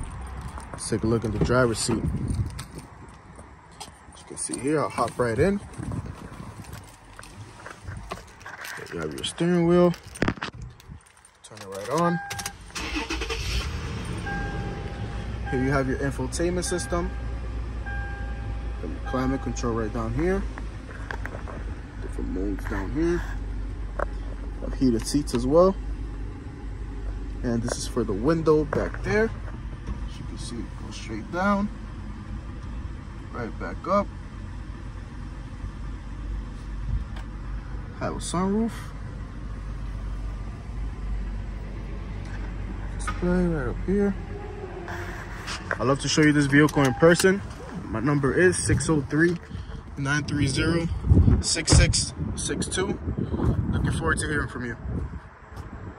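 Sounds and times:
engine starter and engine catching: 0:11.9 - 0:14.3
car engine idling: 0:12.2 - 0:51.3.

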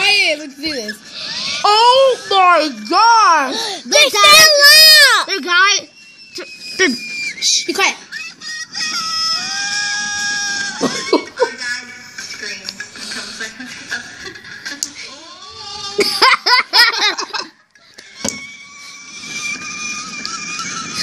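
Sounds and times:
girls screaming: 0:08.2 - 0:11.0
girls laughing: 0:09.4 - 0:21.0.

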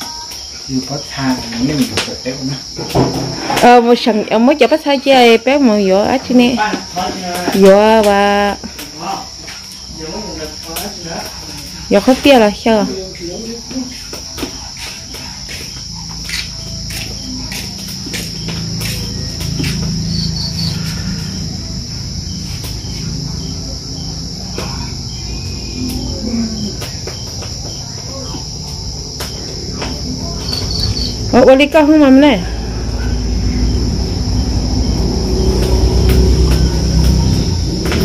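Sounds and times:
insects chirring: 0:00.0 - 0:38.0.

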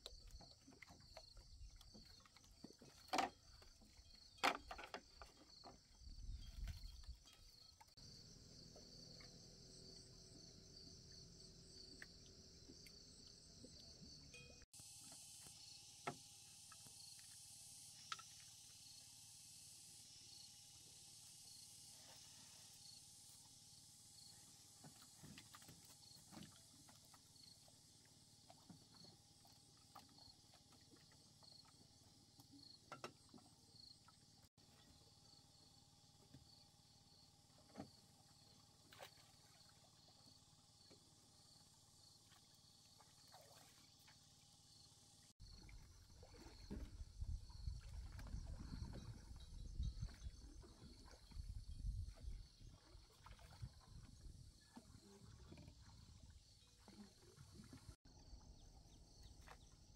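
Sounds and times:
faint insect chirping: 0:00.0 - 0:59.9
rowboat sloshing and knocking: 0:00.1 - 0:08.0, 0:45.4 - 0:58.0.

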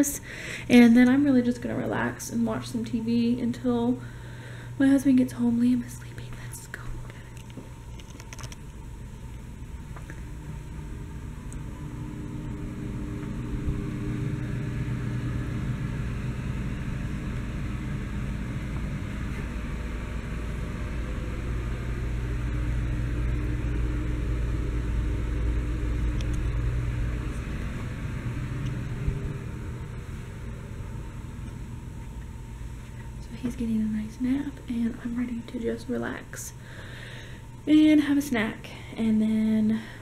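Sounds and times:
low rumble with faint hum: 0:00.0 - 0:40.0.

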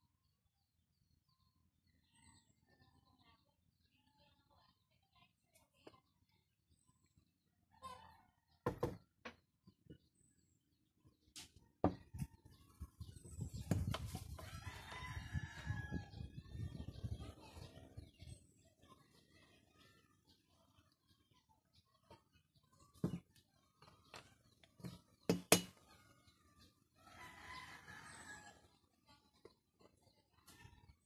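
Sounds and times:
rooster crowing: 0:14.4 - 0:16.2, 0:27.0 - 0:28.6.

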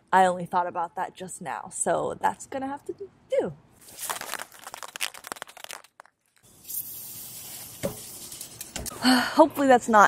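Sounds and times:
aerosol can rattling when shaken: 0:03.8 - 0:08.8
aerosol spraying hiss: 0:06.6 - 0:08.3.

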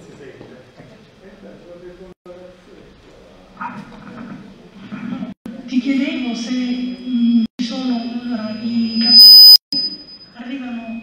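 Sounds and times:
microphone feedback squeal: 0:08.0 - 0:11.0.

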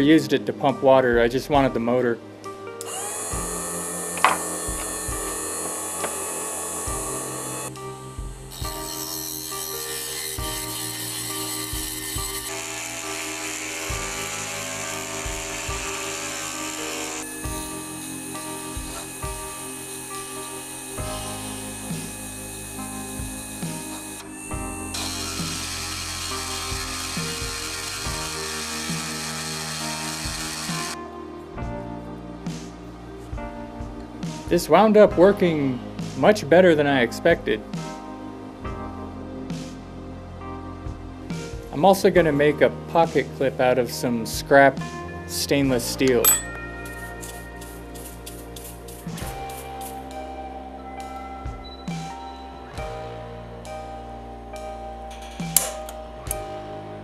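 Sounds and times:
background music: 0:00.0 - 0:57.0
small electric motor spinning: 0:02.8 - 0:07.8, 0:08.4 - 0:31.0
hand file rasping on metal rod: 0:08.6 - 0:14.4.

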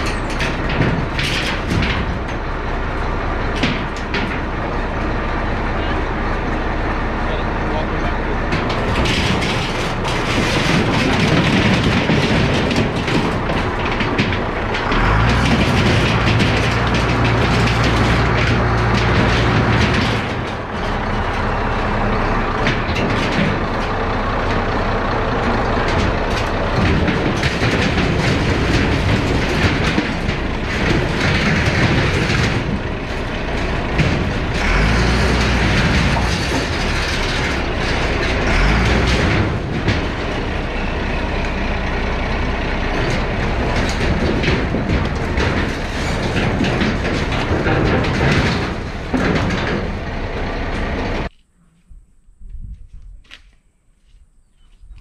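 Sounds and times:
metal scraping and clattering: 0:00.0 - 0:51.3
tractor diesel engine under load: 0:00.0 - 0:51.6.

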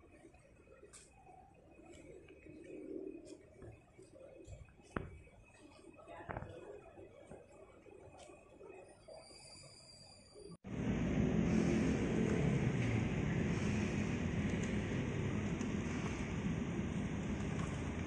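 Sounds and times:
car engine running: 0:10.6 - 0:18.0.

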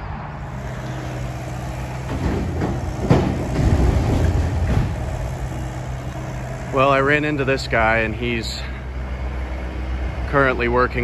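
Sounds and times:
excavator engine running: 0:00.0 - 0:11.0
debris crunching and clattering: 0:00.6 - 0:06.3.

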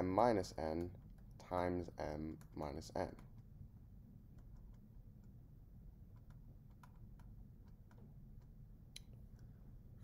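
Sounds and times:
low room hum: 0:00.0 - 0:10.0
stylus tapping on tablet screen: 0:02.2 - 0:05.4, 0:06.0 - 0:09.2.

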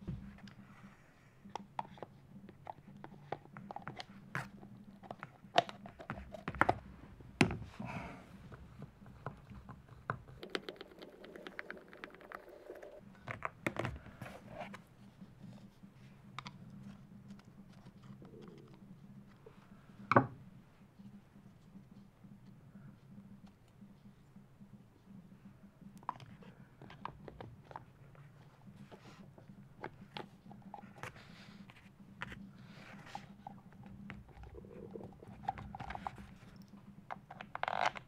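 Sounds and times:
faint low hum: 0:00.0 - 0:38.0.

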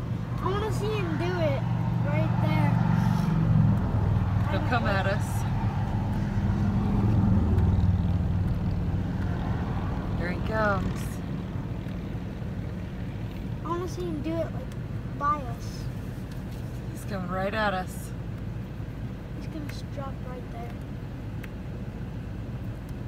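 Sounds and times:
car engine hum from inside: 0:00.0 - 0:23.0.

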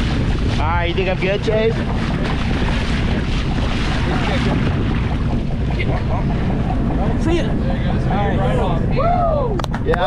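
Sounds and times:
water splashing along hull: 0:00.0 - 0:10.0
wind buffeting microphone: 0:00.0 - 0:10.0.

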